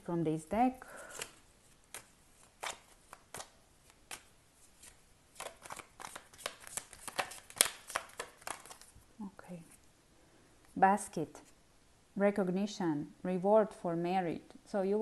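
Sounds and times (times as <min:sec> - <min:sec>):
cards being shuffled by hand: 0:01.0 - 0:09.0.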